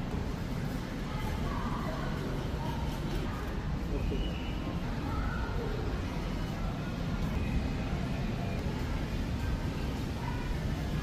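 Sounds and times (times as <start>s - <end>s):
low rumble of store ambience: 0.0s - 11.0s.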